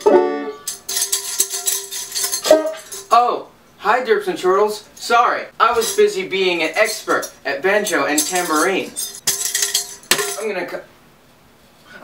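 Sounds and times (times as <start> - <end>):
banjo chord ringing: 0.0 - 0.8, 2.4 - 3.1
tambourine jingling: 0.6 - 3.2, 4.8 - 10.6.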